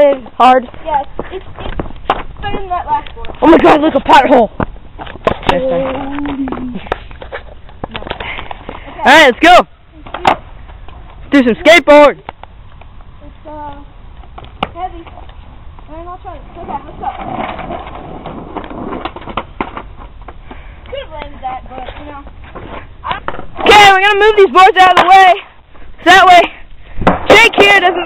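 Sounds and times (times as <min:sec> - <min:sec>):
skateboard clacking on pavement: 0:00.0 - 0:08.8, 0:10.0 - 0:11.2, 0:16.0 - 0:22.4, 0:23.0 - 0:25.4
skateboard wheels rolling on asphalt: 0:00.0 - 0:28.0
sharp taps on asphalt: 0:00.1 - 0:03.4, 0:12.2 - 0:15.9.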